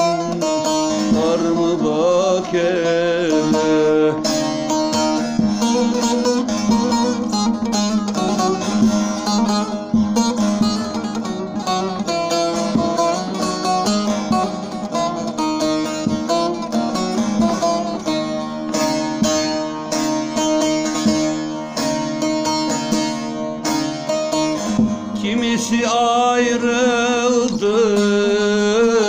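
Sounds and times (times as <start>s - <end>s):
long-necked lute strummed and picked: 0.0s - 29.0s.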